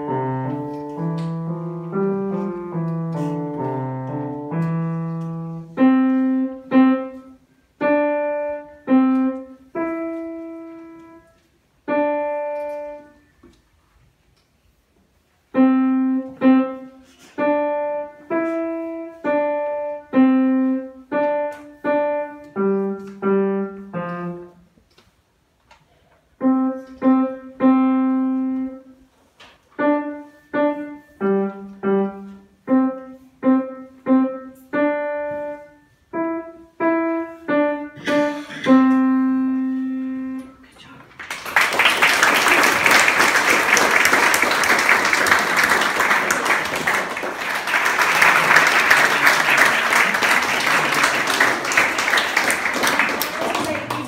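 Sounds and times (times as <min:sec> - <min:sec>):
piano melody: 0:00.0 - 0:13.3, 0:15.5 - 0:24.7, 0:26.4 - 0:29.0, 0:29.8 - 0:40.7
audience applause: 0:41.2 - 0:54.0.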